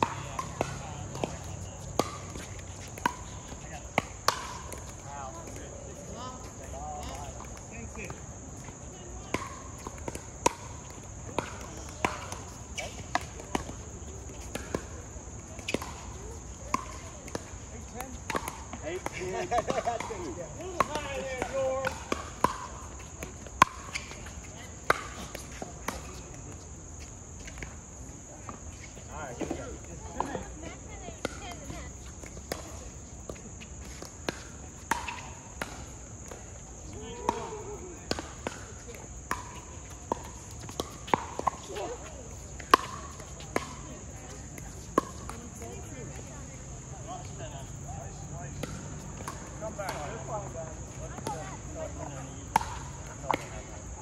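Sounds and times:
ball bouncing on hard court: 0:00.0 - 0:05.6, 0:07.0 - 0:26.3, 0:31.1 - 0:46.4, 0:48.5 - 0:50.4.

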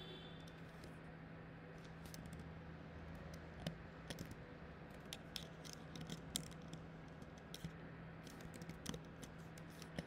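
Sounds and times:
faint steady hum: 0:00.0 - 0:10.0
keyboard and mouse clicks: 0:03.1 - 0:10.0.

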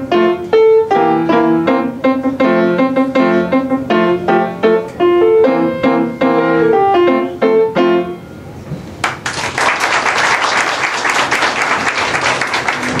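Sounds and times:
grand piano chords: 0:00.0 - 0:08.9
audience applauding: 0:09.0 - 0:13.0.

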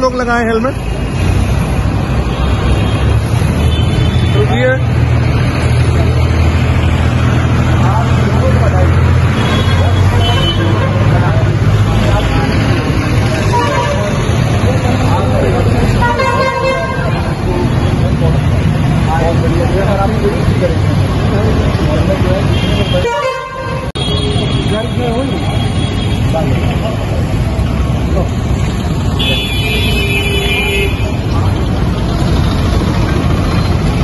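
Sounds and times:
vehicle horns honking: 0:09.3 - 0:11.2, 0:13.4 - 0:14.2, 0:16.0 - 0:17.4, 0:22.4 - 0:26.6, 0:29.1 - 0:31.2.

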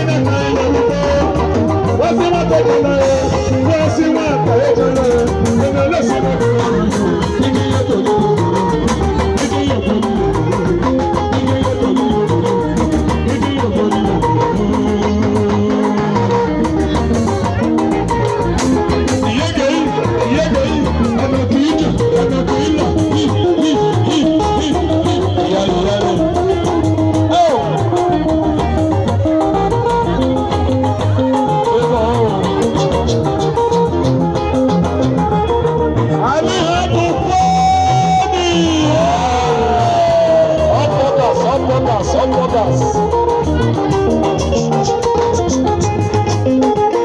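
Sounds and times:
guitar playing bent notes: 0:00.0 - 0:47.0
live band music: 0:00.0 - 0:47.0
steady percussion beat: 0:00.0 - 0:47.0.

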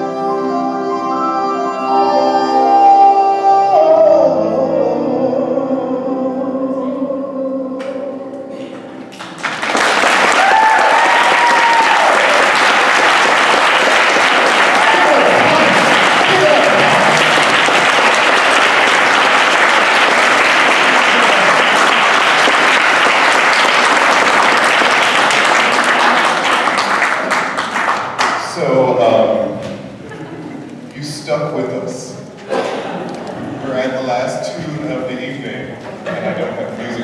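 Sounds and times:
audience applause: 0:09.1 - 0:28.4
people cheering: 0:09.6 - 0:27.6.

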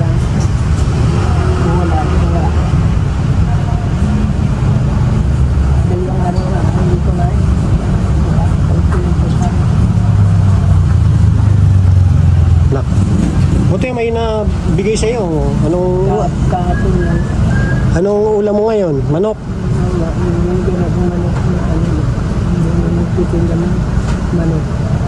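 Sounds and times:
vehicle engine rumble: 0:00.0 - 0:25.0.

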